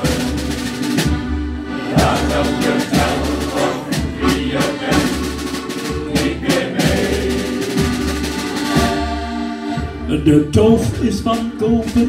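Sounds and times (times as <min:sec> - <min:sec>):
live instrumental music: 0:00.0 - 0:12.0
steady drum beat: 0:00.0 - 0:12.0.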